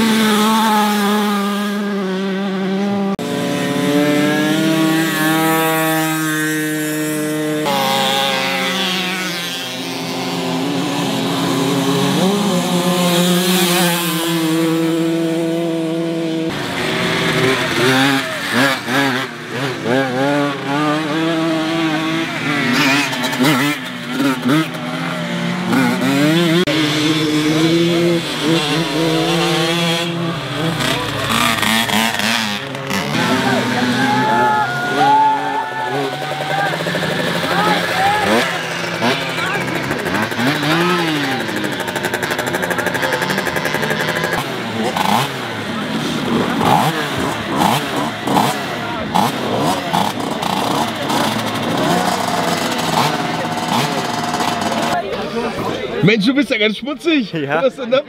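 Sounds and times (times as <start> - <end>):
moped engines revving: 0.0 - 58.0.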